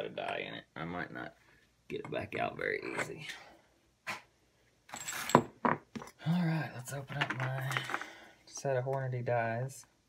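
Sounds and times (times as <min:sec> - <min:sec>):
man speaking: 0:00.0 - 0:03.5.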